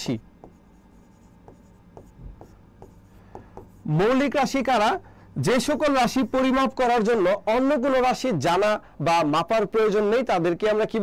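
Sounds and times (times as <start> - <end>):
marker pen writing on board: 0.4 - 4.2.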